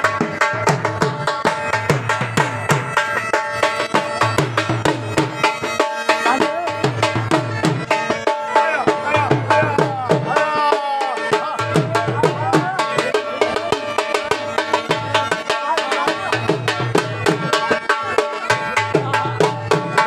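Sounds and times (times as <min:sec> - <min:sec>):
fast drum beat: 0:00.0 - 0:20.0
bagpipe melody with drone: 0:01.4 - 0:12.1.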